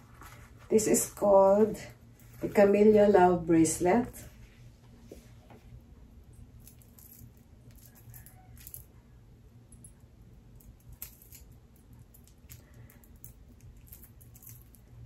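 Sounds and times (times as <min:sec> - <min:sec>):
low steady hum: 0:00.0 - 0:15.0
chain bracelet clicking and rustling: 0:06.3 - 0:09.0, 0:09.7 - 0:15.0.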